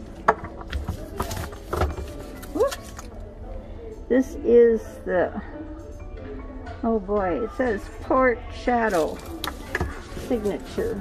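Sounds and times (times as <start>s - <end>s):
bag rustling: 8.9s - 11.0s.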